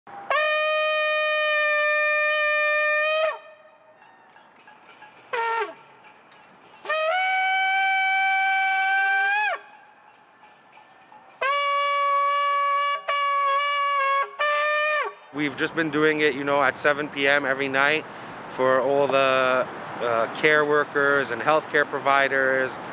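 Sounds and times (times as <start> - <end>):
shofar blasts: 0.1 - 4.0, 5.3 - 5.9, 6.8 - 10.1, 11.4 - 15.6.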